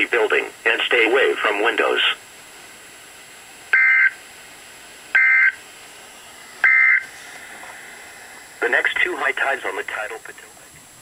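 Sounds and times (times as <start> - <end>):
faint hiss: 0.0 - 11.0
warbling two-tone digital data bursts: 3.7 - 4.2, 5.1 - 5.6, 6.6 - 7.1.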